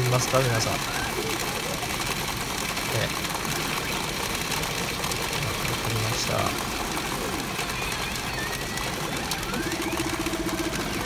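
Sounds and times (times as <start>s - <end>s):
machine noise: 0.0s - 11.0s.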